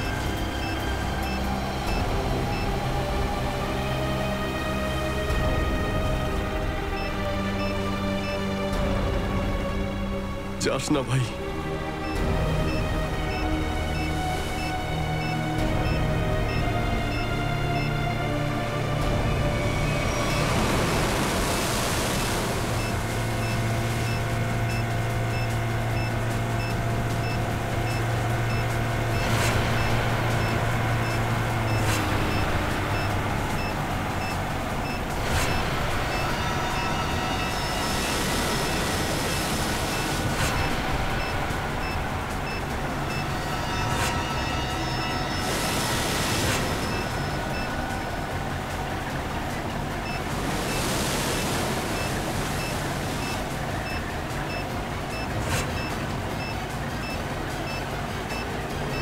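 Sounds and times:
speedboat engines and wake: 0:00.0 - 0:59.0
tense score with low drone: 0:00.0 - 0:59.0.

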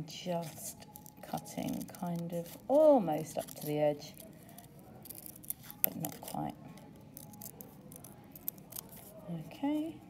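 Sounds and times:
scissors snipping paper: 0:00.4 - 0:09.2.

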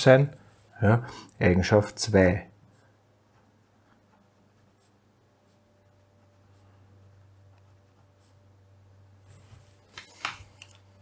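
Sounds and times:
low steady hum: 0:00.0 - 0:11.0
pen scratching on paper: 0:02.7 - 0:08.6.

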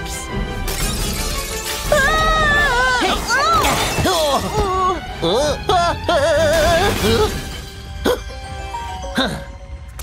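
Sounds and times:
glass shattering: 0:00.7 - 0:02.0, 0:03.4 - 0:04.5.

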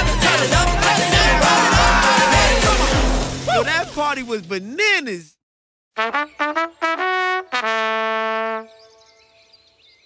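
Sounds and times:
trumpet long note: 0:06.0 - 0:08.8.

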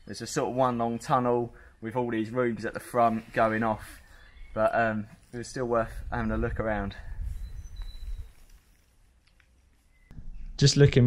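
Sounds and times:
faint high bird chirps: 0:04.0 - 0:04.8, 0:07.2 - 0:08.8, 0:09.8 - 0:10.6
wind rumble on microphone: 0:05.6 - 0:08.5.

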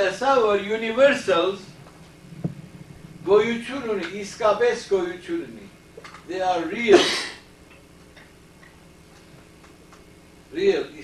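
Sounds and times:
person speaking: 0:03.2 - 0:07.2.

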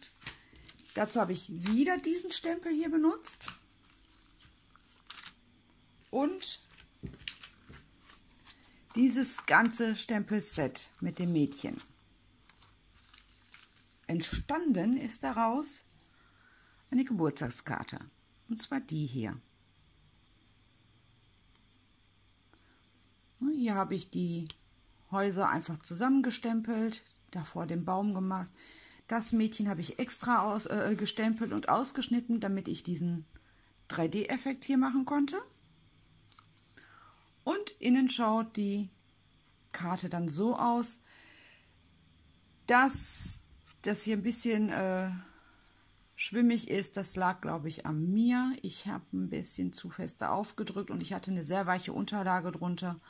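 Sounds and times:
woman speaking: 0:00.0 - 0:00.2, 0:00.9 - 0:03.6, 0:06.1 - 0:06.7, 0:08.9 - 0:11.9, 0:14.1 - 0:15.9, 0:16.9 - 0:19.4, 0:23.4 - 0:33.3, 0:33.9 - 0:35.6, 0:37.5 - 0:39.0, 0:39.7 - 0:41.0, 0:42.7 - 0:45.3, 0:46.2 - 0:53.0
paper card being opened: 0:00.0 - 0:02.1, 0:03.3 - 0:05.4, 0:06.6 - 0:09.8, 0:11.7 - 0:14.1
plastic sheet handling: 0:00.0 - 0:02.2, 0:03.3 - 0:05.4, 0:06.0 - 0:09.8, 0:10.9 - 0:14.1
paper rustle: 0:00.0 - 0:02.4, 0:03.2 - 0:05.4, 0:06.0 - 0:14.4.

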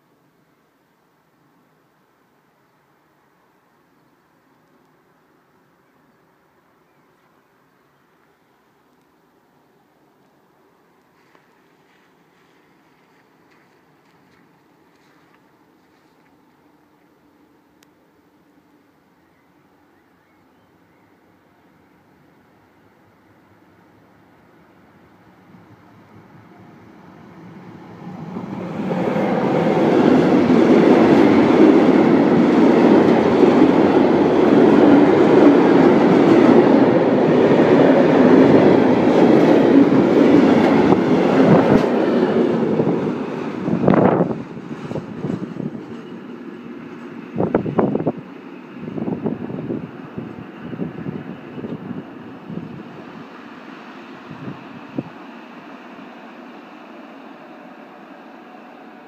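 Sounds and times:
freight train rumbling past: 0:09.8 - 0:59.0.

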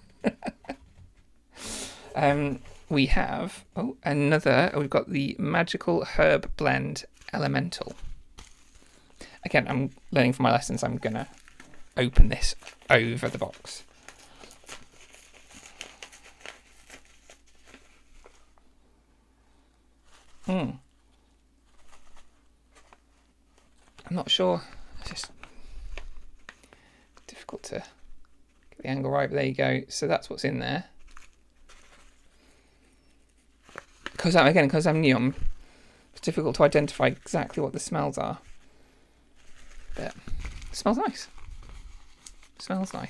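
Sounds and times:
paper pouch crinkling: 0:07.0 - 0:18.7, 0:20.0 - 0:28.8, 0:30.9 - 0:43.0.

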